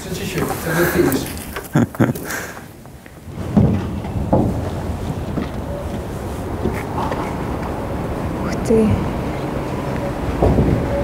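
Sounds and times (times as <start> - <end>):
wind buffeting microphone: 2.7 - 11.0.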